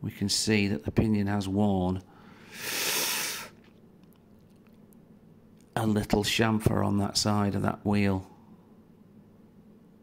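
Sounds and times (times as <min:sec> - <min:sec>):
person breathing in: 0:02.1 - 0:03.6.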